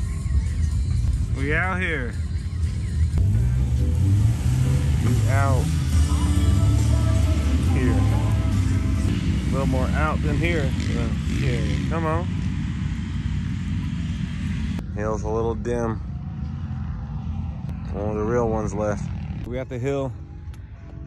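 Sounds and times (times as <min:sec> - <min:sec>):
background music: 0:00.0 - 0:11.8
vehicle engine rumbling: 0:00.0 - 0:21.0.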